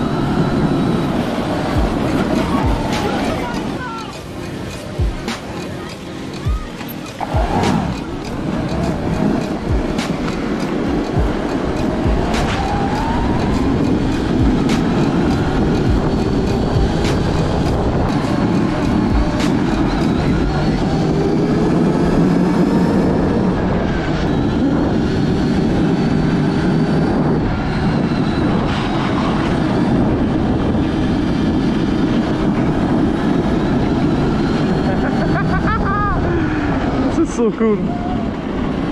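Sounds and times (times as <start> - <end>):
track rumble: 0.0 - 38.9.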